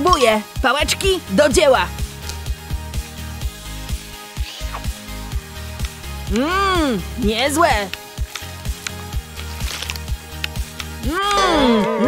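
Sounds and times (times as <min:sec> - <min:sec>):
background music with low thumps: 0:00.0 - 0:12.0.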